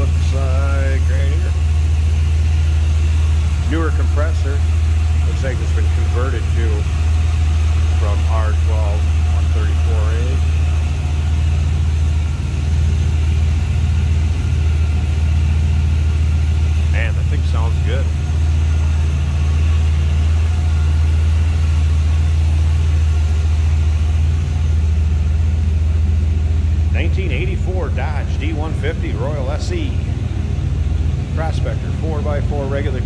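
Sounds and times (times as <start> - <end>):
pickup truck engine idling: 0.0 - 33.0.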